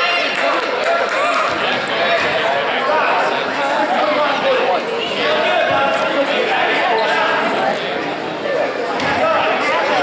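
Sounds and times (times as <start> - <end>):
people talking in echoing gym: 0.0 - 10.0.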